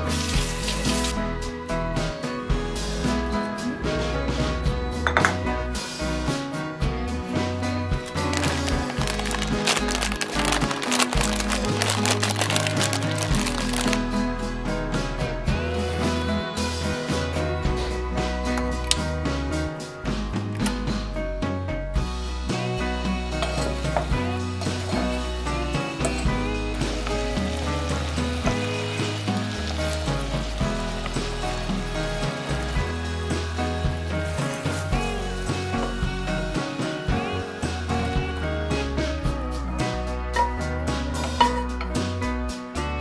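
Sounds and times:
fruit sizzling in a saucepan: 0.0 - 1.2, 8.0 - 14.1, 23.4 - 36.5
background music: 0.0 - 43.0.

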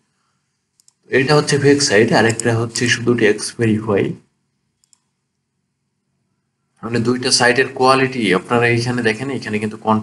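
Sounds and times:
faint low steady hum: 0.0 - 10.0
computer mouse click: 0.7 - 1.0, 4.8 - 5.2.

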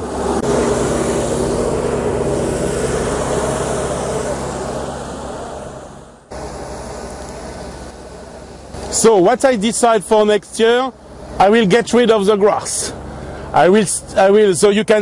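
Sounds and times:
steady background noise: 0.0 - 15.0
tractor engine running: 0.0 - 15.0.

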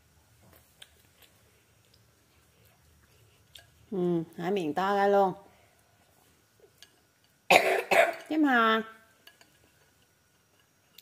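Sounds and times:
girl coughing: 7.5 - 8.3.

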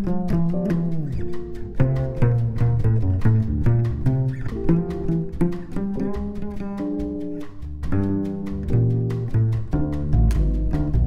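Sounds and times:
jazz quartet playing: 0.0 - 11.0
plucked double bass: 0.0 - 11.0.

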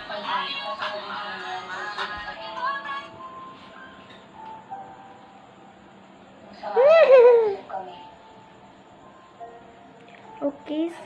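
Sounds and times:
faint music from phone: 0.0 - 11.0.

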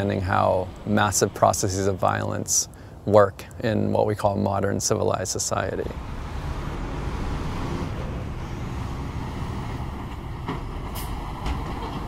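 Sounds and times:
road traffic rumble: 0.0 - 12.0
industrial plant noise: 5.3 - 12.0.

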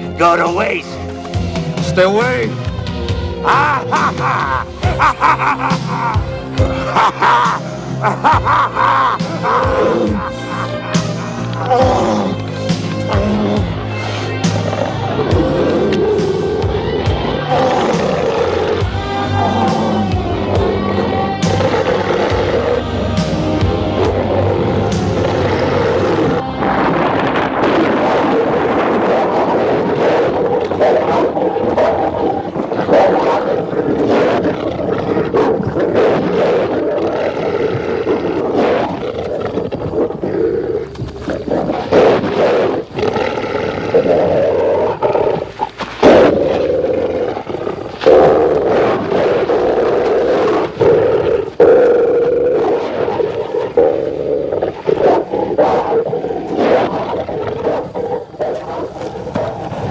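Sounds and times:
horror film music: 0.0 - 59.9
werewolf growls and roars: 1.8 - 59.9.

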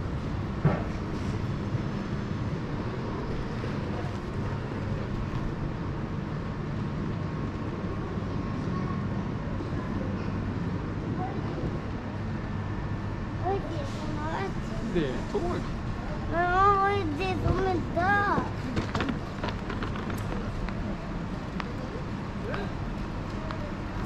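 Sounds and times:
railway station hum and rumble: 0.0 - 24.0.

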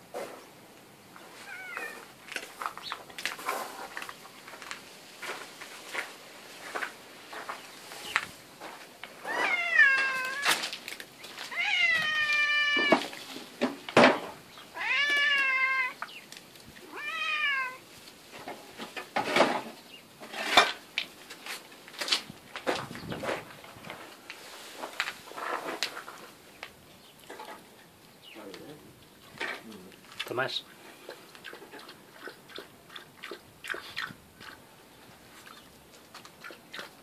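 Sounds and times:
cat meowing: 1.4 - 2.1, 9.2 - 10.6, 11.5 - 13.1, 14.7 - 16.0, 16.8 - 17.8.

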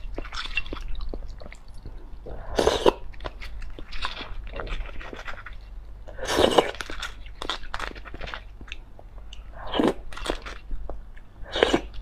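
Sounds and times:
wet chewing and lip smacks: 0.0 - 6.0.

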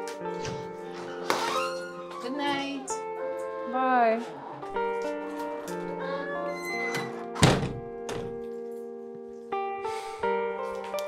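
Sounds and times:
soft background music: 0.0 - 11.0
door shutting with heavy thunk: 6.9 - 8.4.

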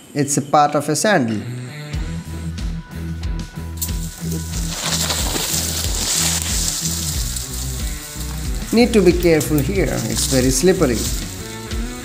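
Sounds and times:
background music with bass line: 1.4 - 12.0
footsteps through dry leaves: 3.8 - 12.0.

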